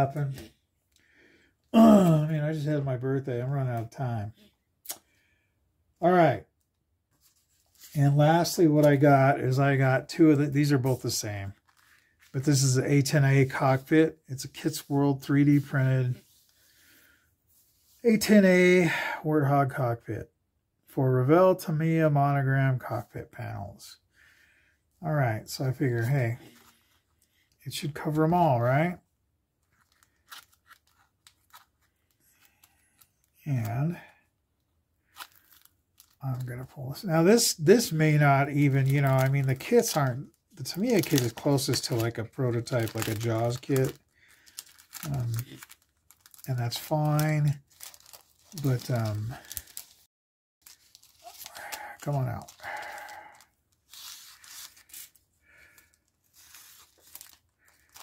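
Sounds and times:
plastic packaging bag crinkling: 35.1 - 36.2, 38.6 - 58.0.

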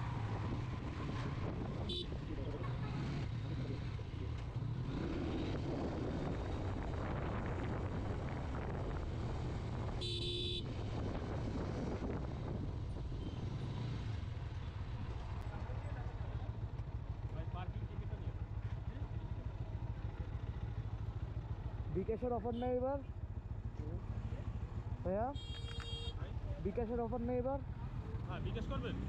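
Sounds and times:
motorcycle engine running: 0.0 - 21.9
short horn beep: 10.0 - 10.6, 25.4 - 26.2.

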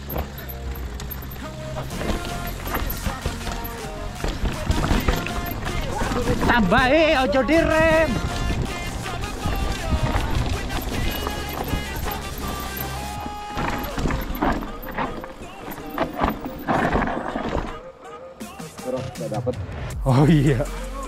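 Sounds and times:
mountain bike rattling on rocky trail: 0.0 - 18.0
background music with bass: 0.0 - 21.0.

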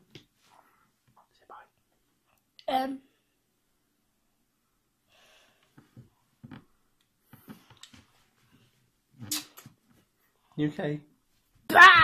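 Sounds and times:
faint whispering: 1.2 - 1.9.

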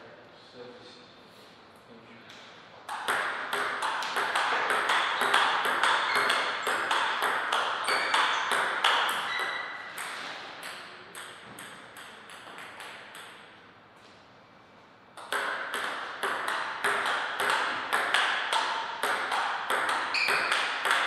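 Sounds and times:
table tennis ball hits: 2.9 - 13.6, 15.2 - 21.0.

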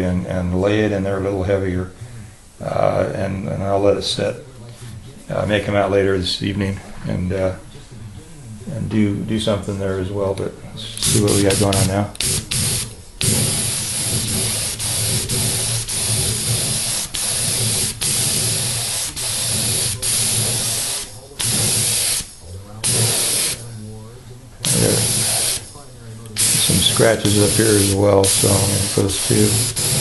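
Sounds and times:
air compressor humming: 10.8 - 30.0
spray gun hissing bursts: 10.9 - 23.8, 24.6 - 30.0.

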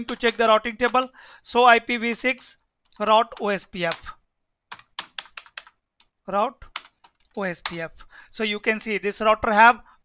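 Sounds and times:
computer keyboard typing: 0.0 - 1.1, 2.8 - 7.9.

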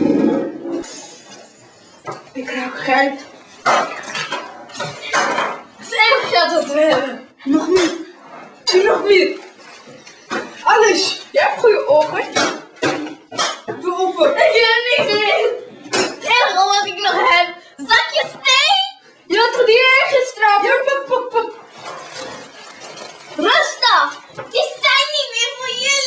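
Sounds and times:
children speaking loudly: 14.0 - 20.9, 23.4 - 26.0.

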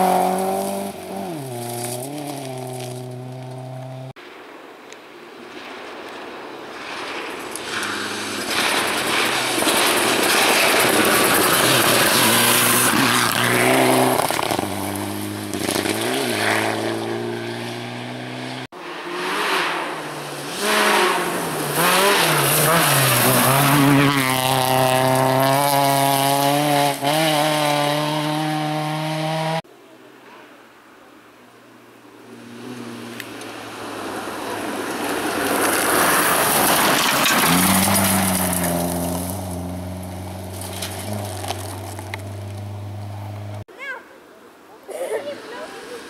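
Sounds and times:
rally car engines revving: 0.0 - 4.2, 7.5 - 29.6, 32.3 - 43.7
tyres hissing on gravel: 6.8 - 15.3, 33.8 - 42.7.

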